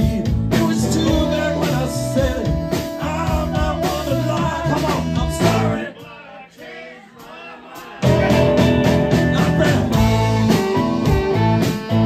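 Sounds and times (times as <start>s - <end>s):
blues band playing: 0.0s - 12.0s
people singing: 3.4s - 10.0s.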